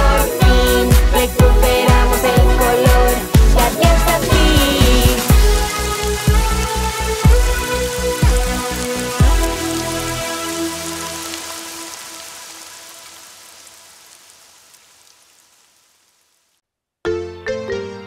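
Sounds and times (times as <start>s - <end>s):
steady drum beat: 0.0s - 9.6s
sustained instrumental chords: 0.0s - 11.1s.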